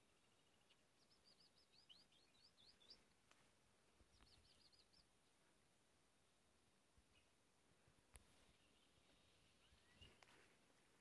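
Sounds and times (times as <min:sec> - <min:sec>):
small bird chirping: 0:00.0 - 0:03.2, 0:04.0 - 0:05.3, 0:08.2 - 0:10.6.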